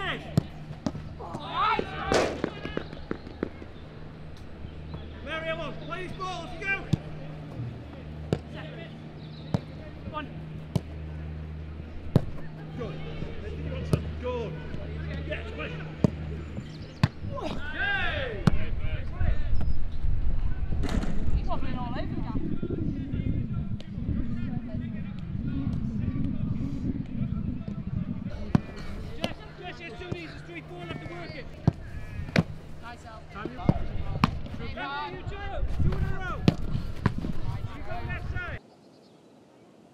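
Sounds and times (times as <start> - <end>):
steady low hum: 0.0 - 38.6
football kicked hard: 33.6 - 34.5, 35.8 - 37.5.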